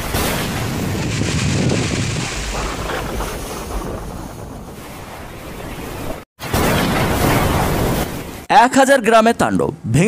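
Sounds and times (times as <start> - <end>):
storm wind buffeting microphone: 0.4 - 6.2.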